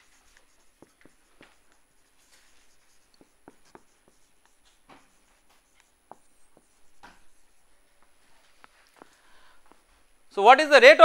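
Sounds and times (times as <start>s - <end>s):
marker pen on whiteboard: 0.0s - 10.2s.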